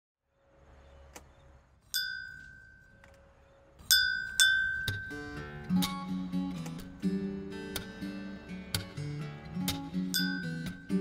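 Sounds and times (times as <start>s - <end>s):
small bell ringing: 1.9s - 3.0s, 3.8s - 5.4s, 10.1s - 11.0s
acoustic guitar music: 3.8s - 11.0s.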